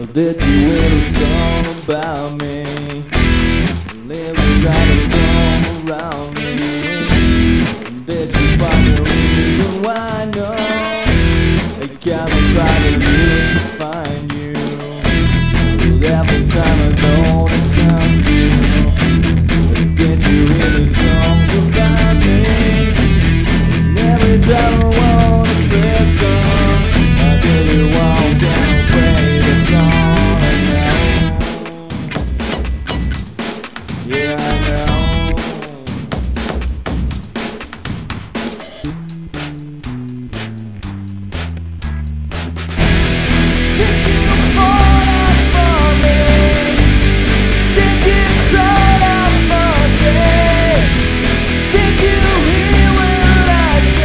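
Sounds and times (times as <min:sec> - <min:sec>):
electric guitar rock music: 0:00.0 - 0:40.8, 0:42.8 - 0:54.0
low held notes: 0:38.8 - 0:54.0.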